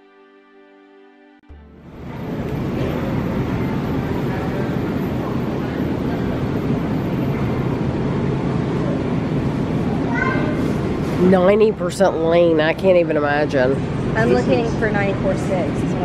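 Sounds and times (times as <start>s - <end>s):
low hum and rumble: 1.6s - 16.0s
faint murmur of voices: 2.0s - 11.8s.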